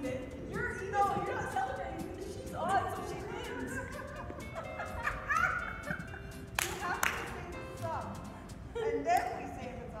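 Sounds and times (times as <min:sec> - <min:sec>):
background music: 0:00.0 - 0:10.0
sharp claps: 0:06.5 - 0:07.9.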